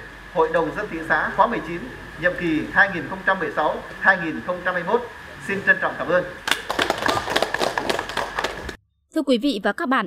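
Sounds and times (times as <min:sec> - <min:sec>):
audience applause: 0:06.4 - 0:08.8.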